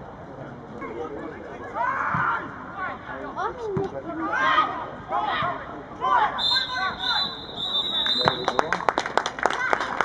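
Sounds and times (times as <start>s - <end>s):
people calling out and talking: 0.2s - 8.6s.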